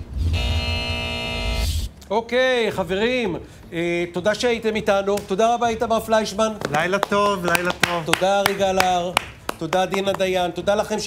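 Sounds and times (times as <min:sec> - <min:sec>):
steady synthesized tone: 0:00.0 - 0:01.9.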